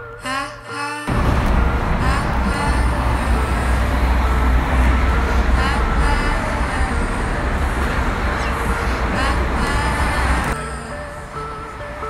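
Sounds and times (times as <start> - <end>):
traffic rumble under overpass: 1.1 - 12.0
faint voices: 1.8 - 12.0.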